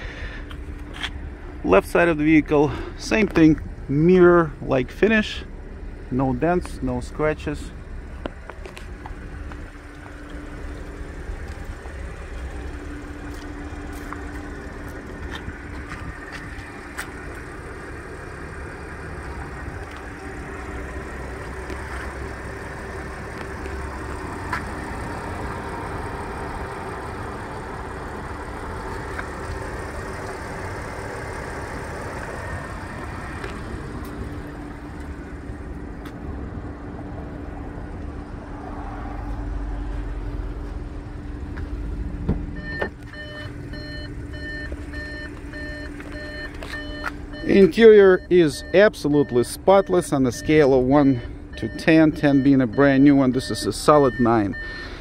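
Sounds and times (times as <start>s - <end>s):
outdoor hum: 0.0s - 55.0s
electronic warning chime: 42.6s - 54.9s.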